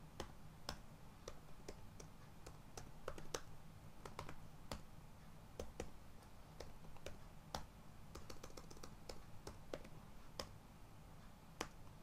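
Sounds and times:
low steady hum: 0.0s - 12.0s
computer keyboard typing: 0.2s - 4.8s, 5.6s - 6.0s, 6.6s - 10.5s.

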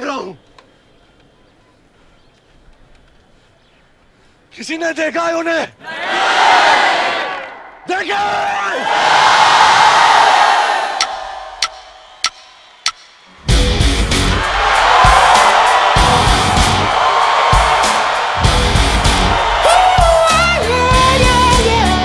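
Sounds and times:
crowd roar: 5.8s - 22.0s
drumstick clicks: 11.0s - 13.3s
heavy rock band: 13.4s - 22.0s.

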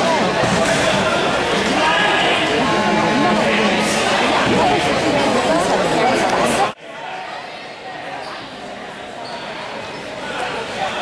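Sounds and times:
background chatter of spectators: 0.0s - 11.0s.

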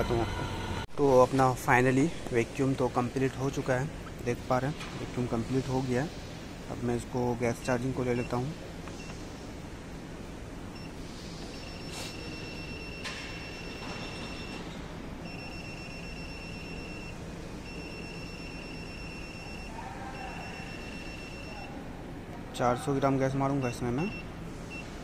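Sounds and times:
steady machine hum: 0.0s - 25.0s.

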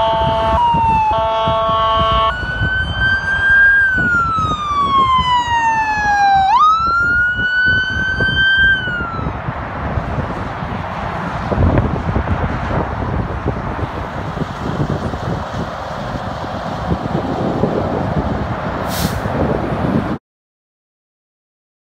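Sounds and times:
multi-tone vehicle horn: 0.0s - 2.5s
wailing siren: 0.0s - 9.6s
traffic noise: 0.0s - 20.2s.

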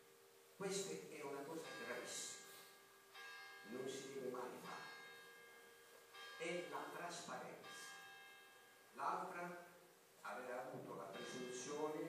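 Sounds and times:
man speaking into a microphone: 0.6s - 2.4s, 3.7s - 4.9s, 9.0s - 12.0s
steady ringing tone: 1.4s - 9.8s.

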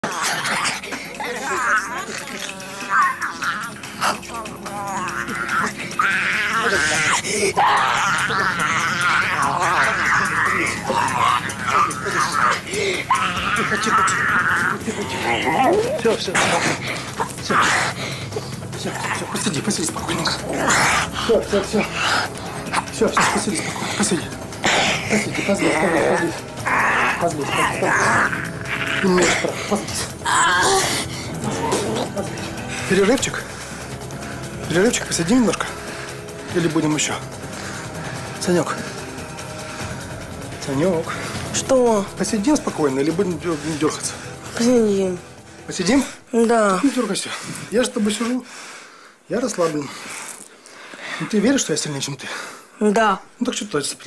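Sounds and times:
boy howling and growling: 0.0s - 18.0s, 23.8s - 32.3s.

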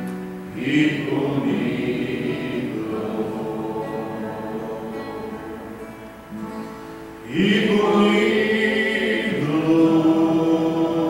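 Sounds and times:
acoustic guitar: 0.0s - 11.0s
congregation singing worship song: 0.0s - 11.0s.

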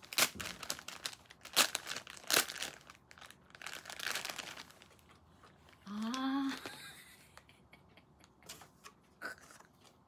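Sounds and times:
foil pouch crinkling: 0.0s - 5.1s.

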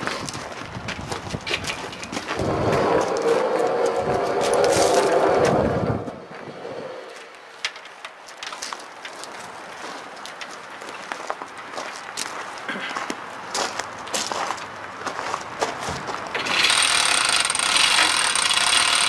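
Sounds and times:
hoist chain rattling: 16.4s - 19.0s.

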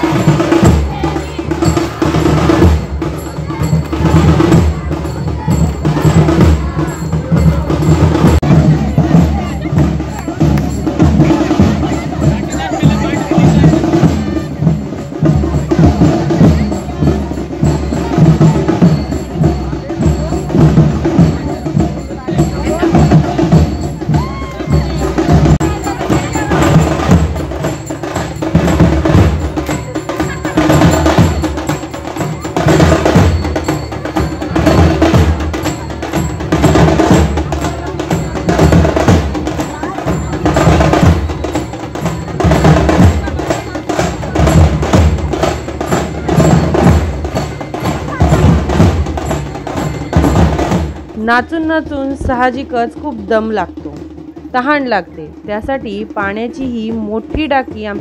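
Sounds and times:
clanging metal percussion: 0.0s - 58.0s
drums beating fast: 0.0s - 58.0s.

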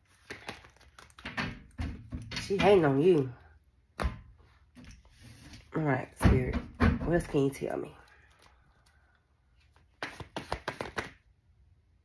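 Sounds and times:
cards being shuffled: 0.0s - 1.3s, 9.6s - 11.3s.

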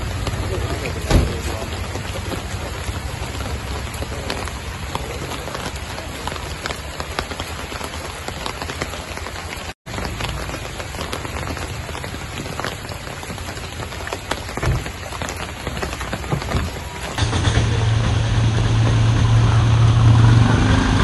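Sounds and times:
steady rain falling: 0.0s - 21.0s.

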